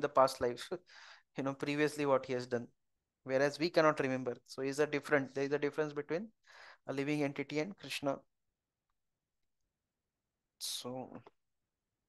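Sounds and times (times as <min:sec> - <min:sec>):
man speaking: 0:10.6 - 0:11.3.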